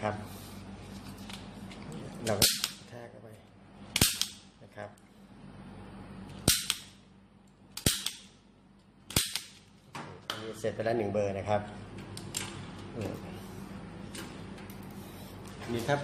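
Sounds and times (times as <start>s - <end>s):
punch-down tool snapping: 4.0s - 4.4s, 6.4s - 6.9s, 7.8s - 8.3s, 9.1s - 9.6s.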